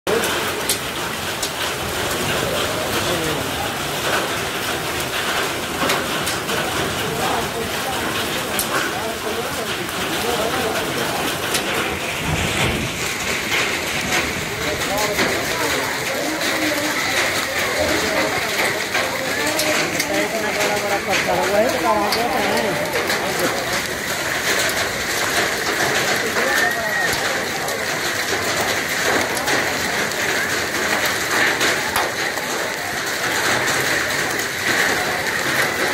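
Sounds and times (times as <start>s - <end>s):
faint voices talking: 0.1s - 35.9s
hail falling: 0.1s - 35.9s
hailstones ticking on surfaces: 0.1s - 35.9s.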